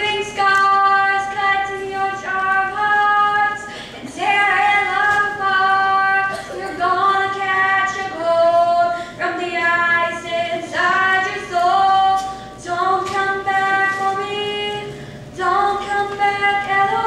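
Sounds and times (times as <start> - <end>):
girl singing into microphone: 0.0 - 17.0.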